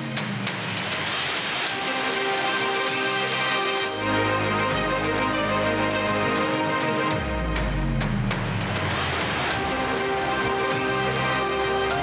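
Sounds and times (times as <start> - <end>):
synth theme music: 0.0 - 12.0
whoosh sweep rising in pitch: 7.2 - 12.0.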